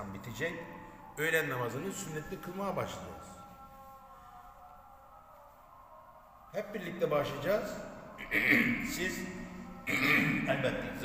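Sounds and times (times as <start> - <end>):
faint call to prayer: 0.0 - 11.0.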